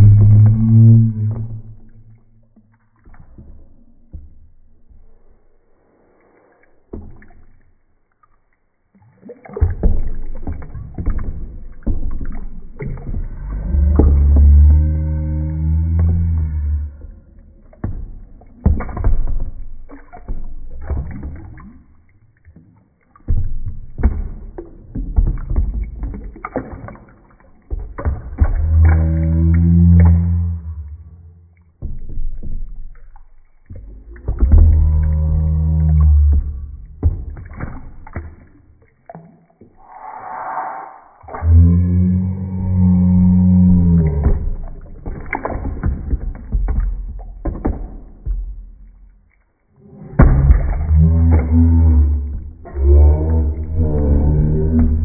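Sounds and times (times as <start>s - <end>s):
long low hum: 0.0s - 2.7s, 12.6s - 17.6s, 28.4s - 31.5s, 33.8s - 37.0s, 39.8s - 44.8s, 49.8s - 55.0s
water sloshing and splashing: 0.0s - 55.0s.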